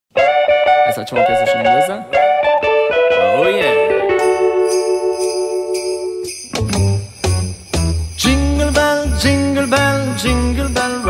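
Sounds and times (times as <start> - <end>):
electric guitar phrase: 0.2 - 10.8
backing music: 0.2 - 11.0.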